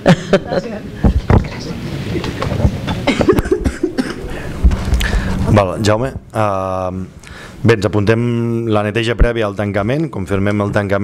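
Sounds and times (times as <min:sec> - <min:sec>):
person coughing: 0:02.9 - 0:04.5.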